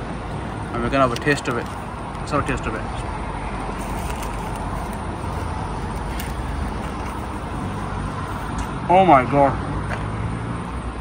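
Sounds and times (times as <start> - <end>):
road traffic rumble: 0.0 - 11.0
street noise: 0.0 - 11.0.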